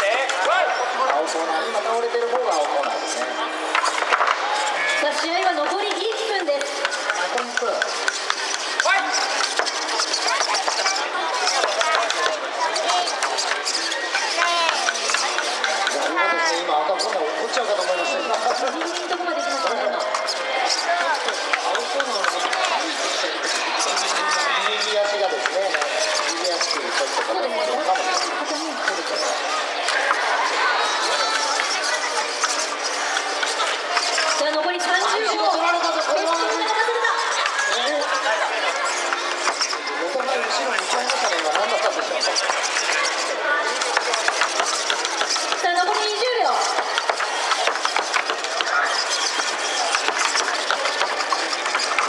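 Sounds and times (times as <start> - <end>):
audience chatter in a hall: 0.0 - 52.0.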